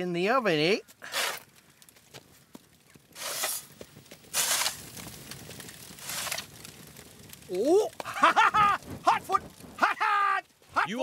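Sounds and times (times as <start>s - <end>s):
coals sliding off metal shovel: 1.0s - 1.6s, 3.2s - 6.8s.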